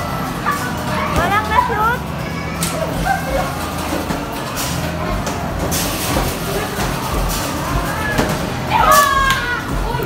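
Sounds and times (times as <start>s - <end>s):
children cheering and yelling: 8.7s - 10.0s.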